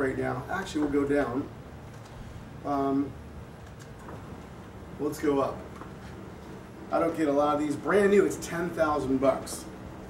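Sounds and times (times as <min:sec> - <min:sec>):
electric actuator humming: 0:00.0 - 0:10.0.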